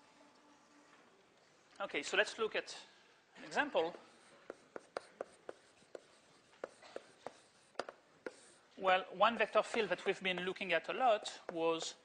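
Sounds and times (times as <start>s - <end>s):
chalk tapping and scraping on blackboard: 3.9s - 8.7s, 9.3s - 12.0s.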